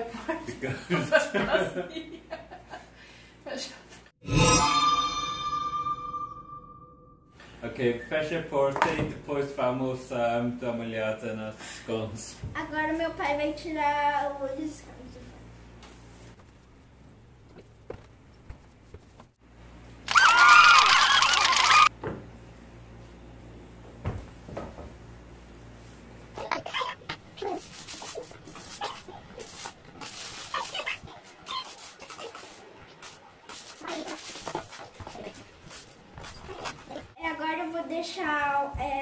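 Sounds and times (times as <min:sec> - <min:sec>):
high wavering cry: 0:04.2 - 0:07.3, 0:20.1 - 0:21.9
low hum: 0:04.2 - 0:07.4.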